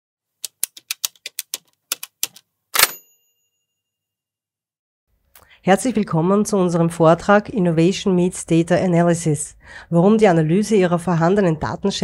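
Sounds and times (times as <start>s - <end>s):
typewriter carriage return: 0.5s - 3.1s
typewriter key strikes: 0.5s - 3.2s
typewriter bell ding: 2.8s - 3.8s.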